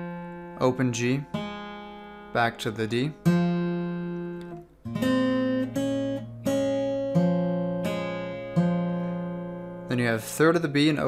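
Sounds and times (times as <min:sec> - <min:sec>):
fingerstyle acoustic guitar: 0:00.0 - 0:11.0.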